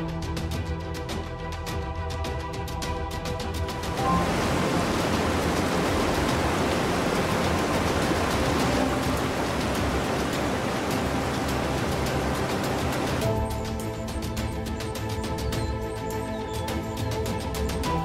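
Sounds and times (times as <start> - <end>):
background music: 0.0 - 18.0
rushing water: 3.3 - 18.0.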